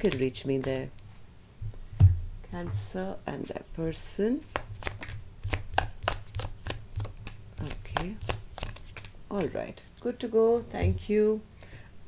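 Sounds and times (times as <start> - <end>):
cards being shuffled: 4.4 - 9.7.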